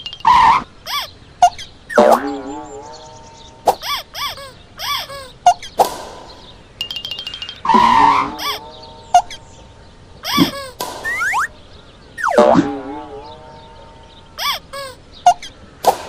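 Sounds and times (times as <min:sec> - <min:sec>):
rattle of ticks: 0:00.0 - 0:01.1, 0:06.8 - 0:08.0
springy boing sliding tones: 0:01.4 - 0:02.7, 0:06.8 - 0:08.6, 0:10.3 - 0:11.5, 0:12.2 - 0:13.3.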